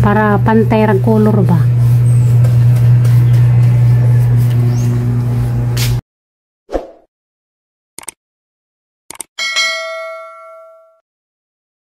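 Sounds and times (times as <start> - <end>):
notification bell ding: 9.4 - 11.0.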